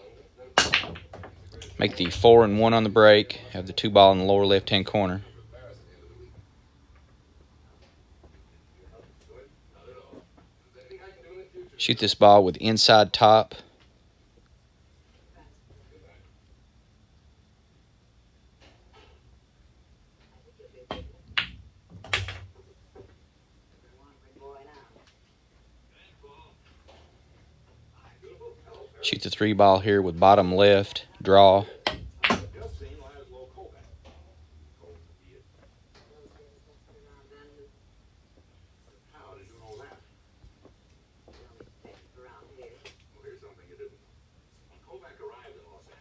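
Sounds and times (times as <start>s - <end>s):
ball dropping into pocket: 0.6s - 2.2s.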